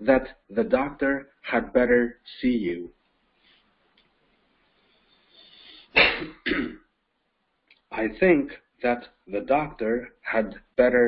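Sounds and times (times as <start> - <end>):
person clearing throat: 5.9 - 6.9.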